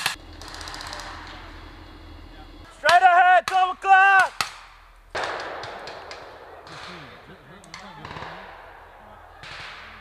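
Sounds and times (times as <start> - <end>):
soldier yelling: 2.7 - 4.4
faint cracks: 4.2 - 8.6
gunshot: 4.2 - 10.0.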